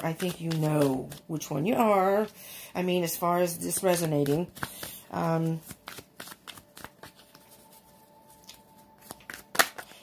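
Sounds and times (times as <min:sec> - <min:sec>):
cards being shuffled: 0:00.0 - 0:02.4, 0:03.0 - 0:10.0.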